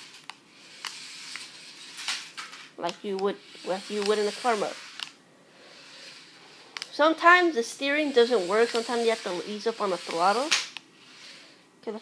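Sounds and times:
clicks: 0:00.0 - 0:04.3, 0:06.7 - 0:07.0.

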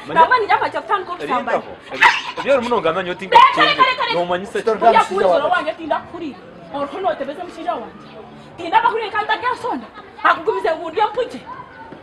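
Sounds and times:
woman and man arguing: 0:00.0 - 0:07.9, 0:08.5 - 0:11.5.

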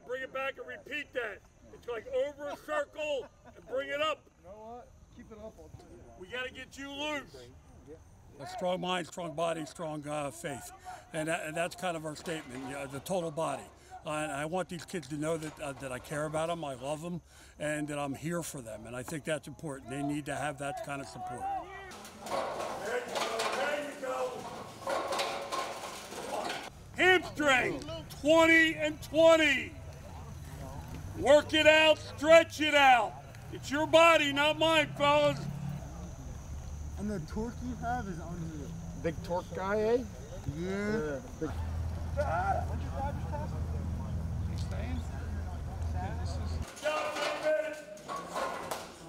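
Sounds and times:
faint distant voices: 0:00.0 - 0:49.0.

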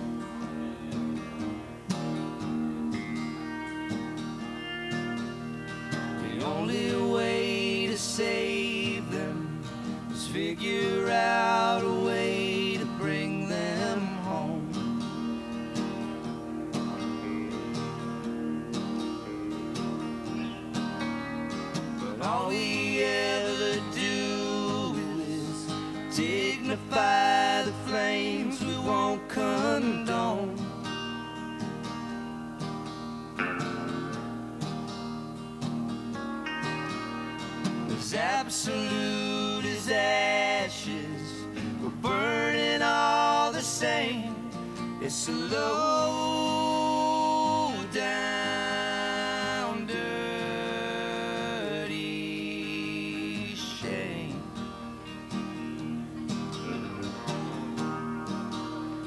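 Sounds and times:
electric guitar: 0:00.0 - 0:59.0
strummed acoustic guitar: 0:00.0 - 0:59.0
man singing: 0:05.9 - 0:15.5, 0:22.0 - 0:31.0, 0:37.9 - 0:54.9.

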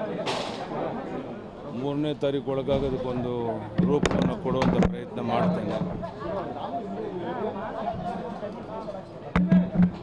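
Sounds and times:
background voices chattering: 0:00.0 - 0:10.0
man talking: 0:01.8 - 0:06.0.

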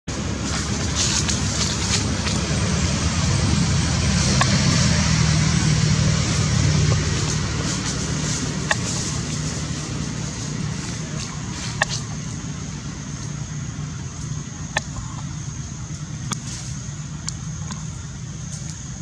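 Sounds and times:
motor vehicle engine rumble: 0:00.0 - 0:19.0.

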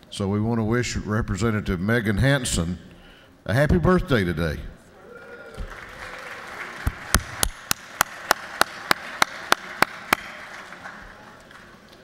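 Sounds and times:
crowd applauding: 0:05.2 - 0:12.0
sharp evenly spaced claps: 0:05.7 - 0:12.0.

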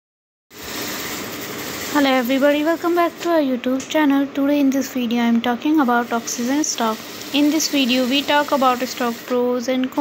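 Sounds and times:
person speaking: 0:01.8 - 0:10.0.

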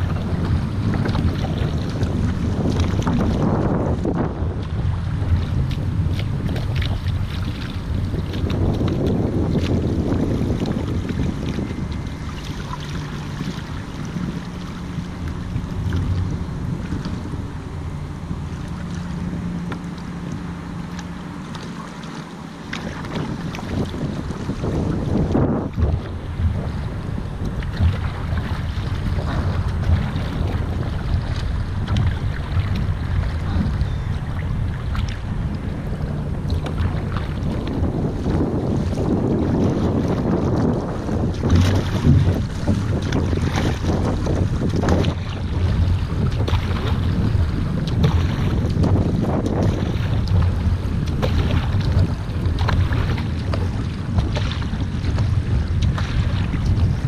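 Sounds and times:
paddle strokes splashing: 0:00.0 - 0:57.0
water rushing along hull: 0:00.0 - 0:57.0
wind rumble on microphone: 0:00.0 - 0:57.0.

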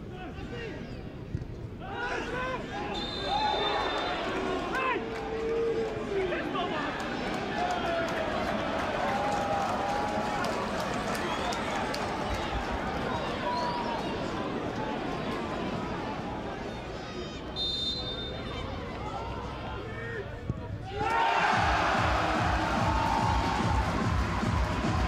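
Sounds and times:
steady outdoor noise: 0:00.0 - 0:25.0
players shouting: 0:12.8 - 0:25.0.

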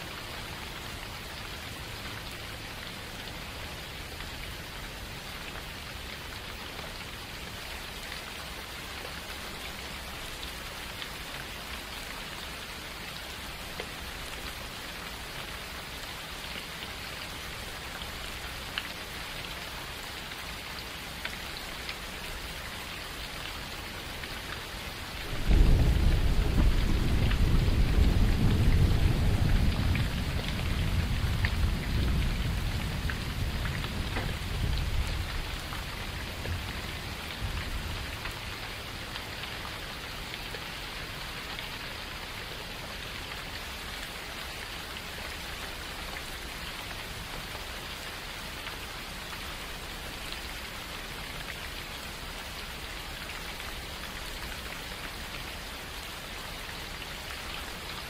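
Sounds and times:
steady rain: 0:00.0 - 0:58.0
thunder rumbling: 0:25.2 - 0:35.7.

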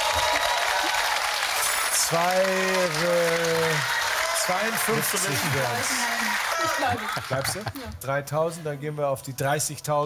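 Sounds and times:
audience applauding: 0:00.0 - 0:07.8.

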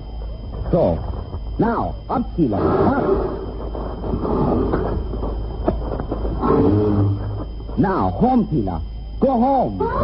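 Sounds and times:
steady rumbling: 0:00.0 - 0:09.0.

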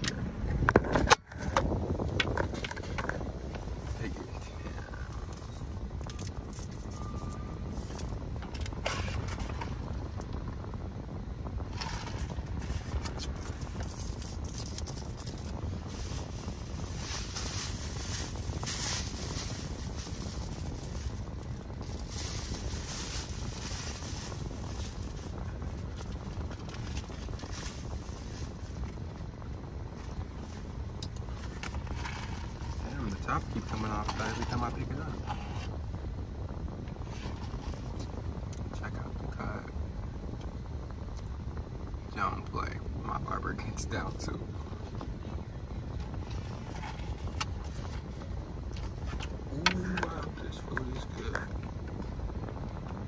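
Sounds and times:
car cabin low rumble: 0:00.0 - 0:53.0
plastic bag rustling: 0:11.8 - 0:28.9.

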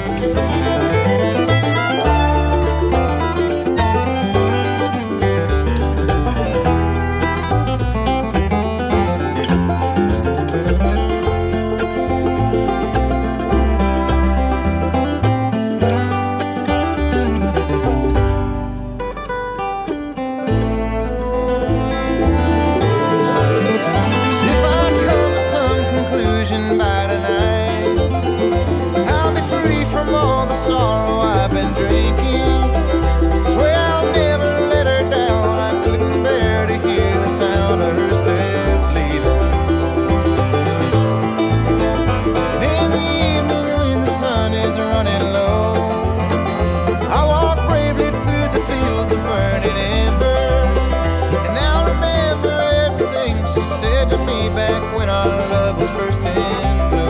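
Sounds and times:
bluegrass banjo and guitar music: 0:00.0 - 0:57.0
pulsing bass line: 0:00.0 - 0:57.0.

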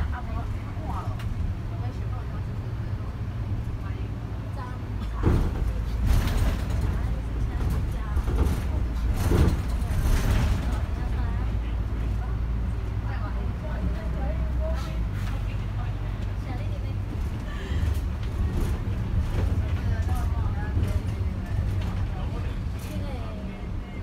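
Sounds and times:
bus engine hum: 0:00.0 - 0:24.0
road noise: 0:00.0 - 0:24.0
knocks and rattles: 0:05.1 - 0:11.2.

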